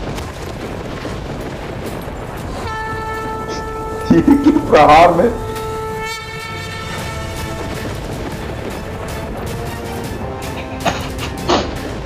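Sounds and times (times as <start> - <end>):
dense rushing rumble: 0.0 - 12.0
steady horn-like tone: 2.6 - 8.3.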